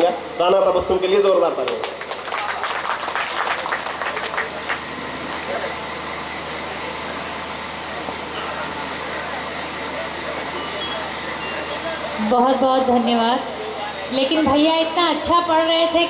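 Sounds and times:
audience applauding: 0:01.7 - 0:05.7.

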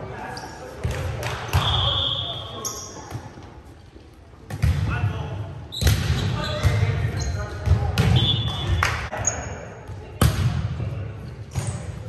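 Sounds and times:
players' voices: 0:00.0 - 0:12.0
sneakers squeaking: 0:00.2 - 0:03.6, 0:05.7 - 0:10.0.

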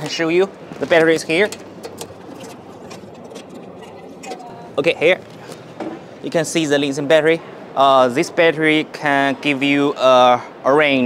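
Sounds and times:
busy exhibition hall noise: 0:00.0 - 0:11.0.

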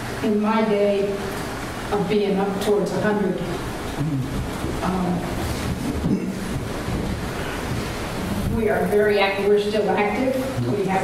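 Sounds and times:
steady rushing noise: 0:04.0 - 0:09.4.

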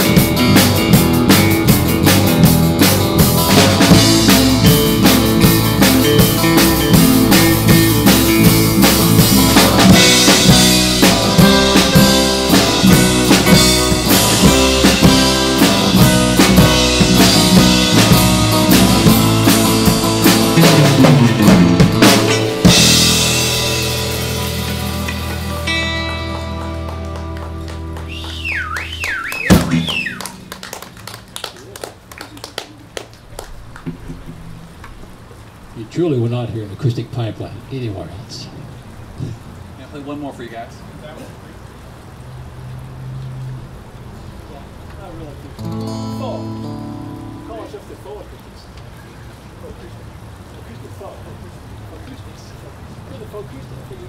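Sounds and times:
band with acoustic guitars and drums: 0:00.0 - 0:35.2, 0:45.5 - 0:49.1
scattered clapping: 0:24.7 - 0:35.0.

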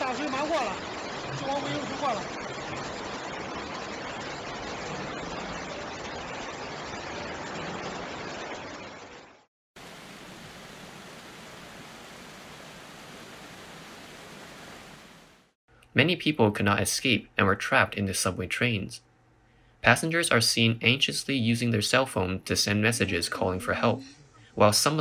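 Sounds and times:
water rushing: 0:00.0 - 0:15.6.

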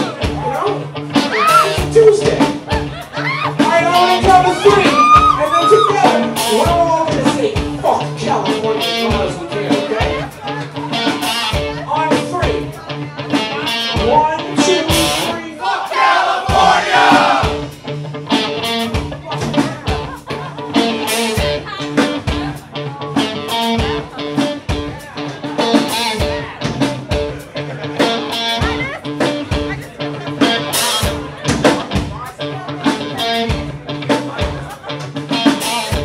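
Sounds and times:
vocals: 0:00.0 - 0:11.1, 0:11.7 - 0:17.7
electric guitar: 0:00.0 - 0:15.4, 0:17.4 - 0:36.0
drum hits: 0:15.9 - 0:22.6.

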